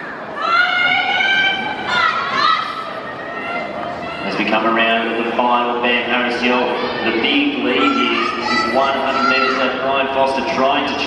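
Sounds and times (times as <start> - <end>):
crowd chatter: 0.0 - 11.0
spectators shouting encouragement: 6.7 - 9.8.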